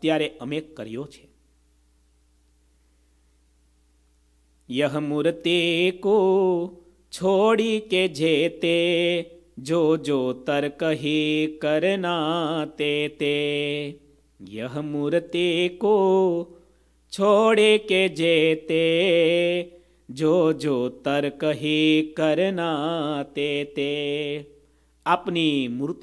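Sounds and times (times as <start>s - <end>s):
man chanting: 0.0s - 1.3s, 4.7s - 16.5s, 17.1s - 24.5s, 25.1s - 26.0s.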